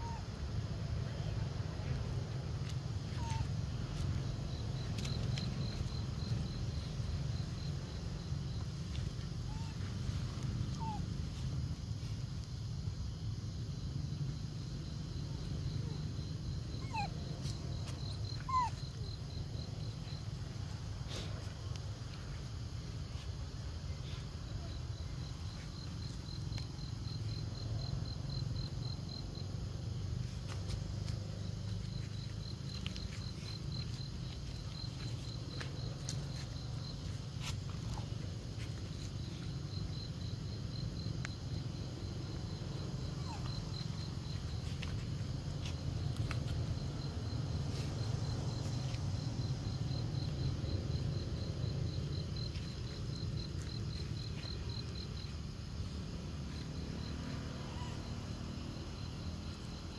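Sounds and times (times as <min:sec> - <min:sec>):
insect chirping: 0:00.0 - 0:59.9
macaque squeaking: 0:03.2 - 0:03.5, 0:16.8 - 0:17.1, 0:18.4 - 0:18.8.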